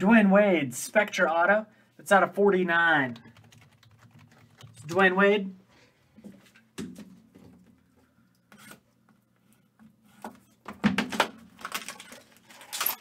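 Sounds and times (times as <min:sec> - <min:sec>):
packaging rustling and crinkling: 0:11.1 - 0:13.0.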